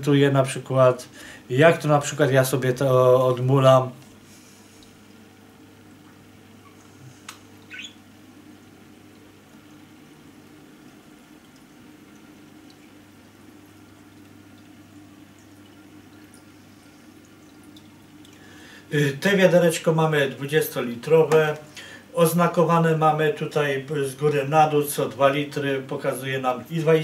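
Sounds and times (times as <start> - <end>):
faint steady hum: 0.0 - 27.0
water trickling: 1.0 - 27.0.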